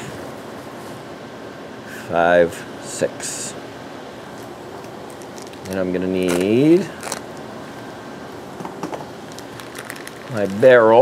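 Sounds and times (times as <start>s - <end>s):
fans humming: 0.0s - 11.0s.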